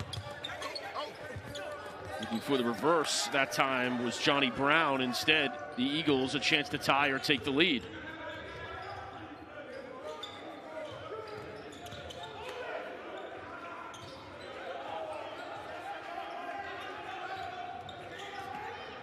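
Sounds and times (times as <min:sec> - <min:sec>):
players calling out: 0:00.0 - 0:08.0.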